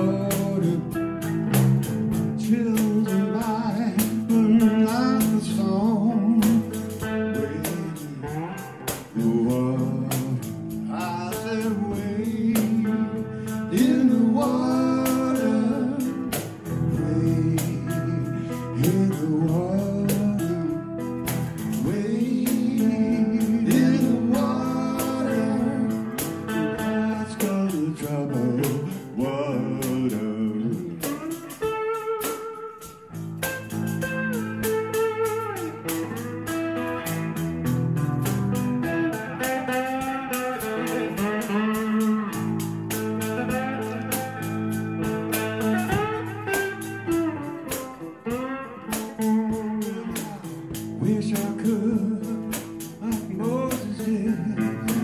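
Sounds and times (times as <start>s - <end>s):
drum kit beat with cymbals: 0.0s - 55.0s
electric slide guitar: 0.0s - 55.0s.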